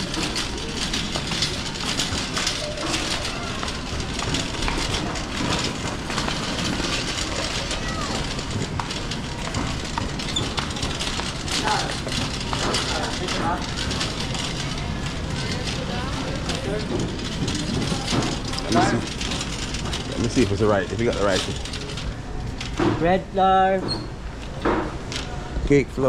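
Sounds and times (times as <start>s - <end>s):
shopping cart rattling on tiles: 0.0s - 25.4s
murmur of voices: 0.0s - 26.0s.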